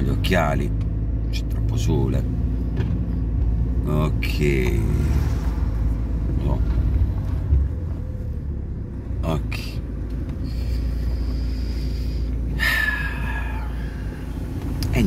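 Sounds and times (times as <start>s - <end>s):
car cabin engine and road rumble: 0.0s - 15.0s.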